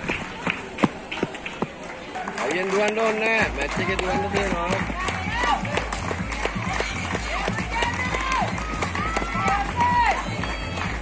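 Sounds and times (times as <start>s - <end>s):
running footsteps on grass: 0.0s - 11.0s.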